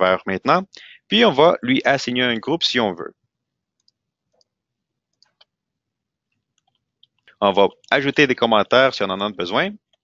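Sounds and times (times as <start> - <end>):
computer mouse and keyboard clicks: 6.5 - 7.3.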